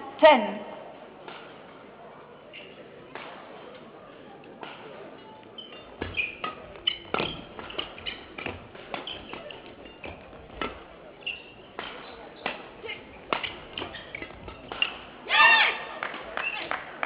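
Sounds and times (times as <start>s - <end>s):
rackets striking shuttlecock: 2.6s - 17.0s.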